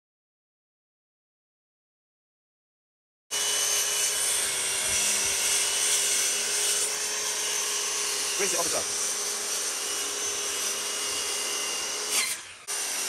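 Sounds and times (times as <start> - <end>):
circular saw cutting plank: 3.3 - 13.0.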